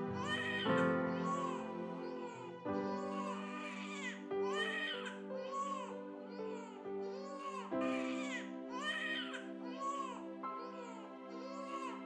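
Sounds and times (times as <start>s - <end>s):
sad dramatic background music: 0.0s - 12.0s.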